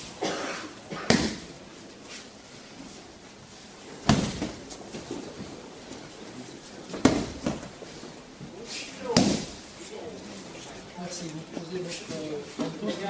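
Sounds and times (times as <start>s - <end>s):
body thudding on mats: 4.0s - 5.1s.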